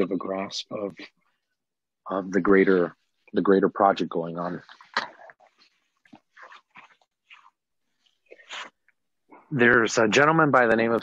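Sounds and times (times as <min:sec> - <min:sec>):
breath and mouth noises: 0:04.5 - 0:09.5.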